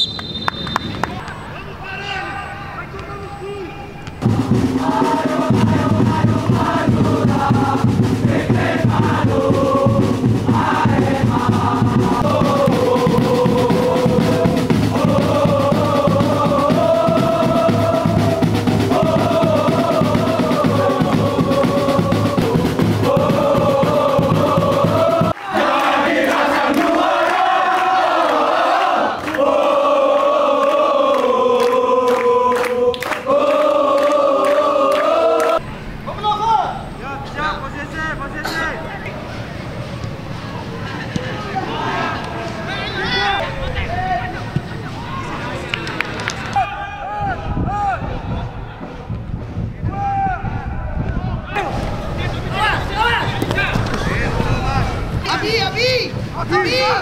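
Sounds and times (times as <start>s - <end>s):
crowd chanting and singing: 0.6s - 57.0s
steady drum beat: 4.2s - 25.4s, 47.5s - 57.0s.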